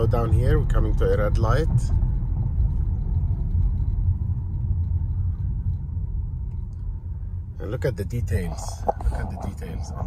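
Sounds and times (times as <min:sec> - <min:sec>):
road and tyre rumble: 0:00.0 - 0:10.0.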